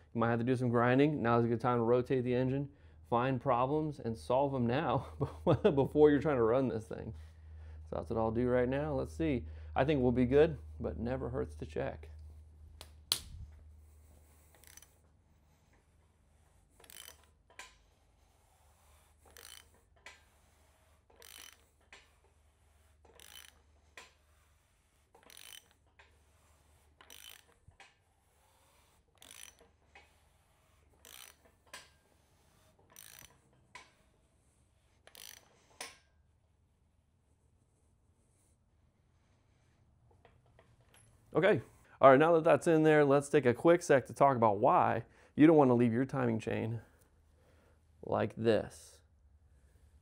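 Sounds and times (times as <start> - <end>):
ratchet wrench clicking: 14.5 - 15.0, 16.8 - 17.8, 19.3 - 20.2, 21.1 - 22.0, 23.1 - 24.2, 25.2 - 26.1, 27.0 - 28.0, 29.1 - 30.1, 31.0 - 31.9, 32.8 - 33.9, 35.0 - 36.0.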